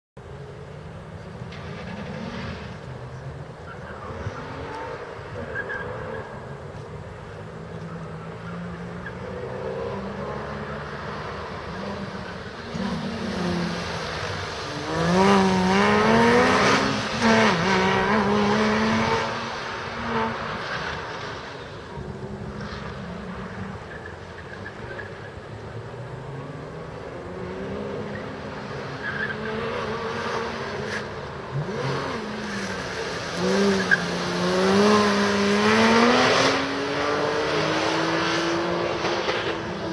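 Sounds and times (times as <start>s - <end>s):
tires squealing: 1.5s - 39.9s
car engine revving: 7.8s - 39.9s.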